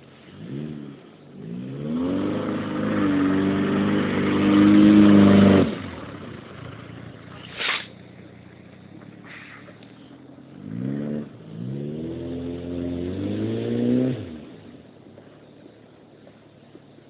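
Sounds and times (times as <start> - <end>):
car engine revving: 0.0 - 17.0.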